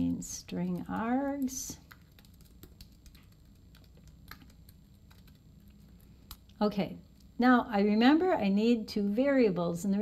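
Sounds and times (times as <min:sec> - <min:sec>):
faint typing on keyboard: 0:00.3 - 0:07.3.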